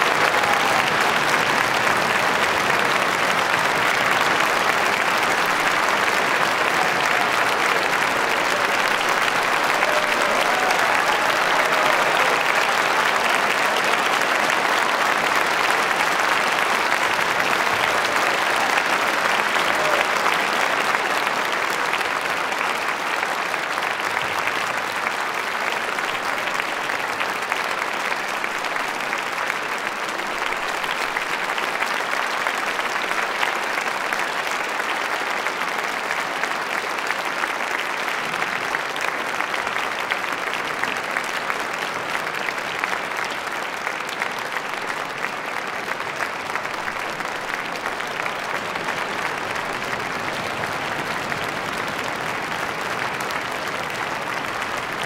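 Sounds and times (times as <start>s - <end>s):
audience applauding: 0.0s - 55.0s.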